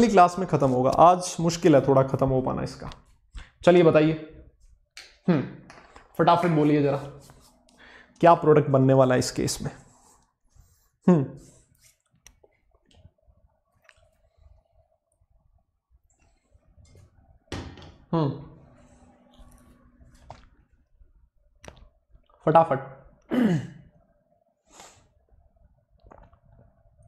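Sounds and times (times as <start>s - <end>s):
man sighing: 18.1s - 18.7s.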